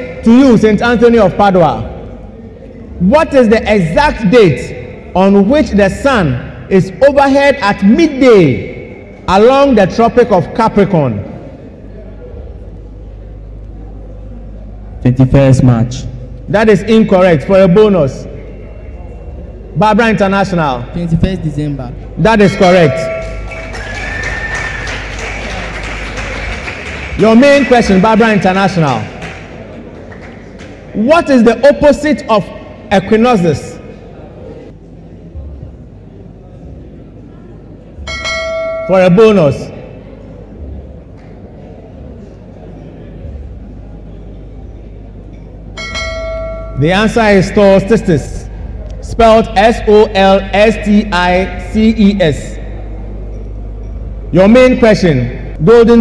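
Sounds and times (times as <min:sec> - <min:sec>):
steady low hum: 0:00.0 - 0:56.0
bell ringing: 0:22.4 - 0:24.4, 0:38.1 - 0:39.7, 0:45.3 - 0:47.5.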